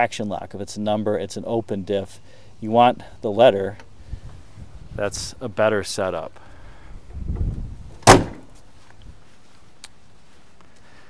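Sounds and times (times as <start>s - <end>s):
car door slamming: 8.0s - 8.5s.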